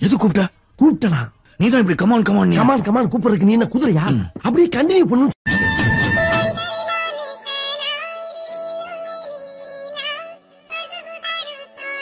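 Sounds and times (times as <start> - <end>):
backing music: 5.5 - 7.5
person singing with wavering notes: 5.7 - 12.0.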